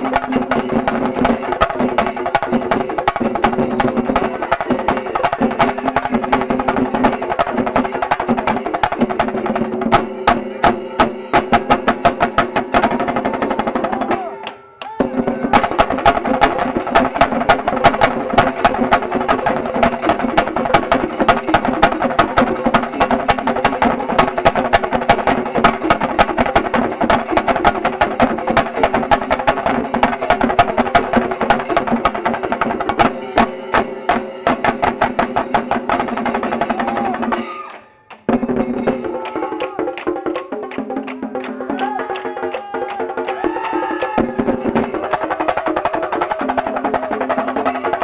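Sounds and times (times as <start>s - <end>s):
drums beaten with sticks: 0.0s - 48.0s.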